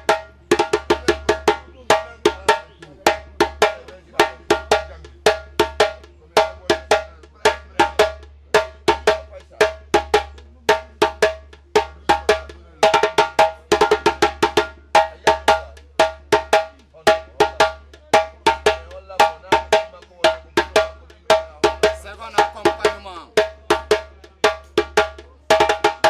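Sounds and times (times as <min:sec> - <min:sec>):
djembe played with hands: 0:00.0 - 0:26.0.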